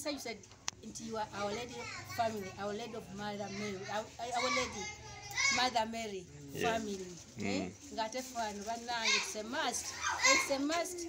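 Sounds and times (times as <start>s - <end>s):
children's voices: 1.1s - 5.8s, 8.9s - 11.0s.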